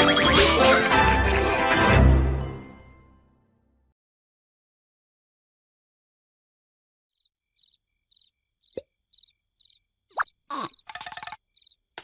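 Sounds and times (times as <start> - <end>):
crickets chirping: 7.2 - 12.0.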